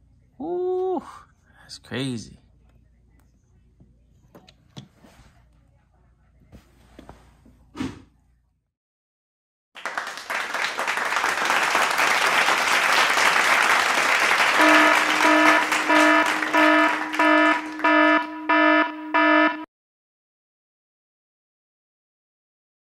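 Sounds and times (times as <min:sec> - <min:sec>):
applause-like crowd noise: 0:09.8 - 0:18.4
loud buzzer beeping: 0:14.0 - 0:19.7.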